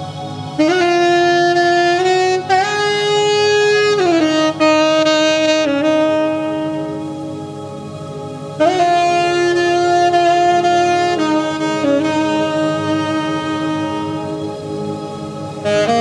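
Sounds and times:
low buzzing drone: 0:00.0 - 0:16.0
tenor saxophone sustained notes: 0:00.0 - 0:16.0.

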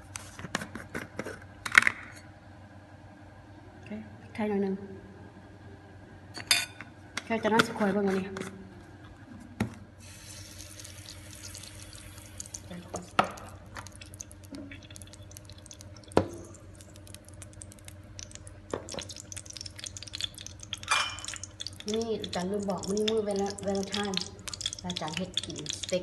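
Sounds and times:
oil crackling in a wok: 0:10.0 - 0:26.0.

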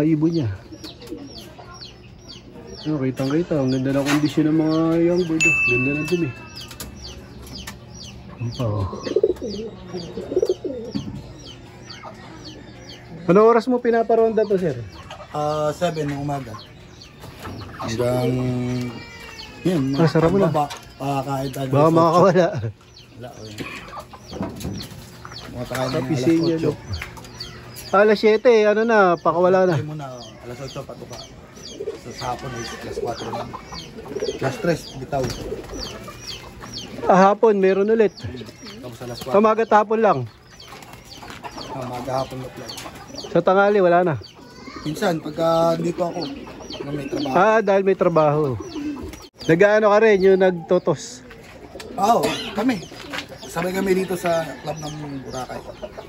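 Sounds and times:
high falling bird chirps: 0:00.0 - 0:13.0
lower bird calls: 0:00.0 - 0:56.0
pigeons cooing: 0:00.0 - 0:56.0.

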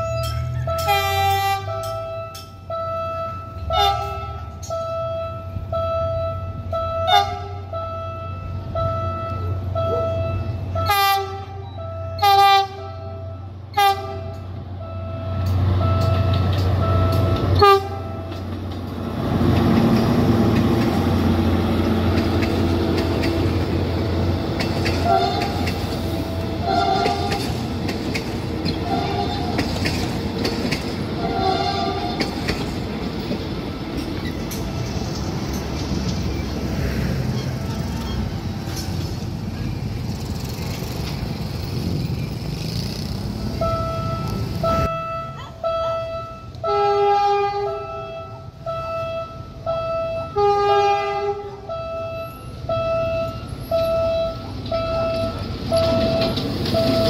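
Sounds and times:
train rumbling past: 0:00.0 - 0:57.0
locomotive horn blasts: 0:00.6 - 0:18.4, 0:24.9 - 0:27.6, 0:28.8 - 0:30.0, 0:31.2 - 0:32.4, 0:43.6 - 0:57.0
wheels clacking: 0:15.4 - 0:44.9, 0:53.6 - 0:57.0.

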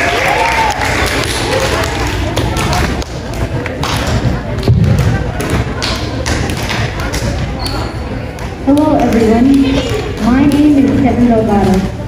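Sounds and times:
large hall room noise: 0:00.0 - 0:12.0
boy speaking over loudspeaker: 0:08.7 - 0:12.0.

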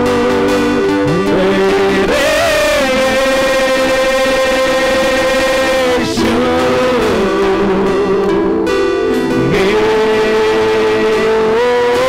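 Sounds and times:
guitar: 0:00.0 - 0:12.0
keyboard: 0:00.0 - 0:12.0
worship singers: 0:00.0 - 0:12.0.

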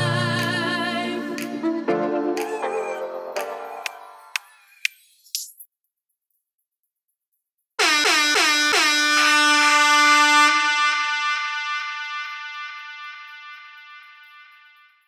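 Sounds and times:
air horn blasts with echo: 0:07.8 - 0:15.0.

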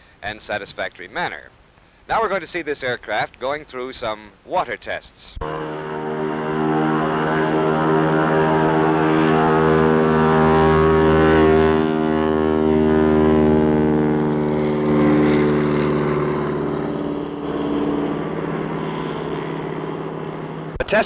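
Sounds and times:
floatplane engine droning: 0:05.4 - 0:21.0.

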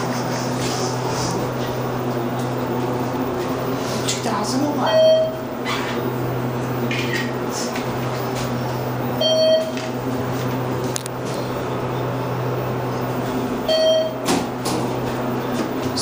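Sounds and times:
elevator low hum: 0:00.0 - 0:16.0
elevator signal beeps: 0:03.3 - 0:14.3.

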